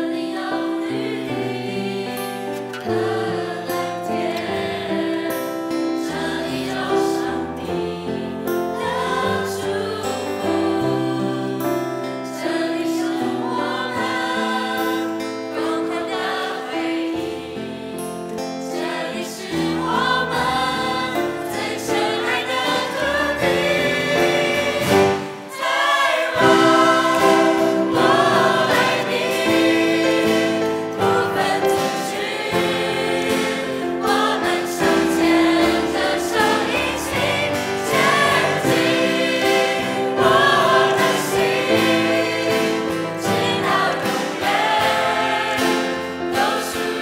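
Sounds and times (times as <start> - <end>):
mixed choir singing: 0.0 - 47.0.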